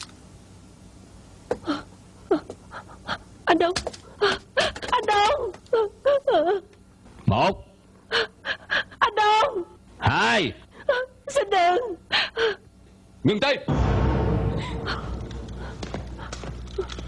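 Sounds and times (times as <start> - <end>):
woman sobbing and wailing: 1.6 - 3.3, 4.2 - 6.7, 8.1 - 9.8, 10.7 - 12.7.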